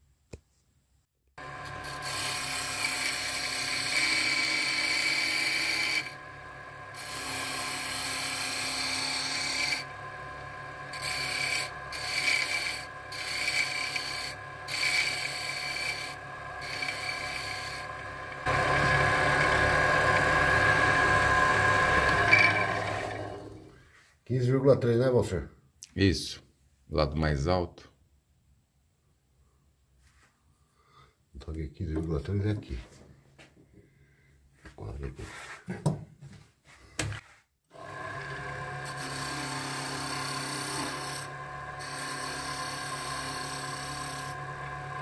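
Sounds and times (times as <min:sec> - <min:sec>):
wood lathe whining: 0:01.4 - 0:23.8, 0:37.7 - 0:45.0
chisel scraping spinning wood: 0:01.6 - 0:06.2, 0:06.9 - 0:23.8, 0:38.8 - 0:44.8.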